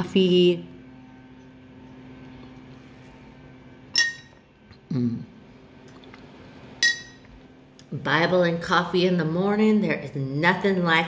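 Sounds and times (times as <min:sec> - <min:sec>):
sharp clink: 0:03.9 - 0:04.4, 0:06.8 - 0:07.3.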